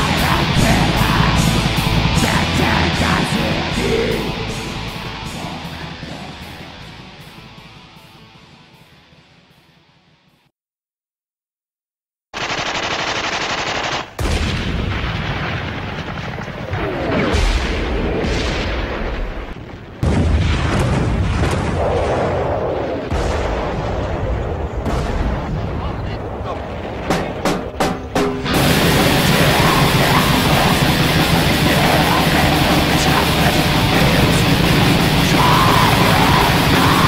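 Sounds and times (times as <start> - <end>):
distorted metal guitars: 0.0 - 10.3, 27.4 - 37.0
rapid repeated bangs: 12.3 - 15.0, 26.9 - 37.0.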